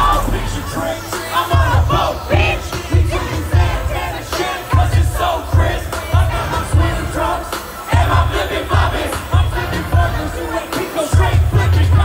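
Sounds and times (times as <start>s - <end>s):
crowd shouting along: 0.0s - 12.0s
deep bass beat: 0.0s - 12.0s
hip-hop song over loudspeakers: 0.0s - 12.0s.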